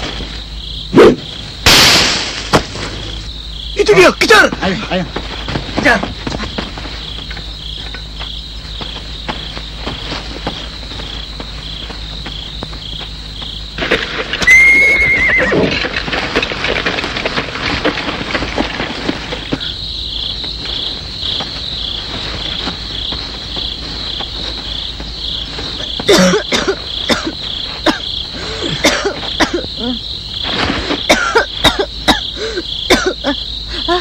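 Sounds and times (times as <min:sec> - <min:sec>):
crickets chirping: 0:00.0 - 0:34.0
horse neighing: 0:14.4 - 0:15.8.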